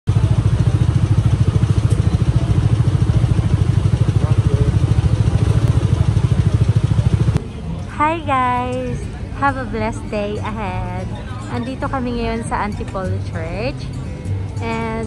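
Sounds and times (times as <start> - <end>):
motorcycle engine idling: 0.1 - 15.0.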